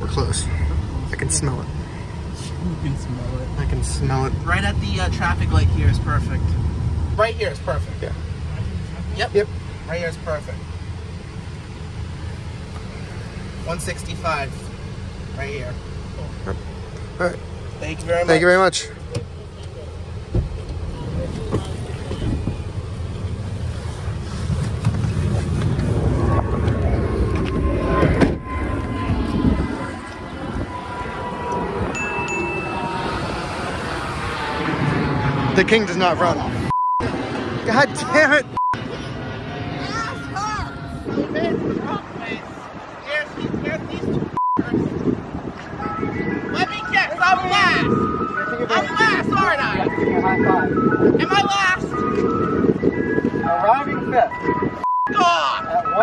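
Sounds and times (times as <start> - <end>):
voices: 0.0 - 23.6, 25.2 - 56.0
street traffic: 0.0 - 56.0
wind buffeting microphone: 20.3 - 36.7, 39.1 - 55.4
ice cream truck jingle: 27.0 - 34.1, 45.8 - 56.0
censor bleep: 36.7 - 37.1, 38.6 - 38.8, 44.4 - 44.7, 54.4 - 56.0.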